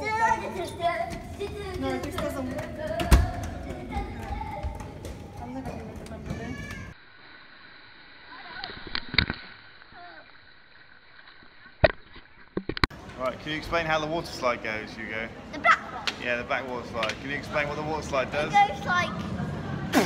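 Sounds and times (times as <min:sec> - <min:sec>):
children running and shouting: 0:00.0 - 0:07.0.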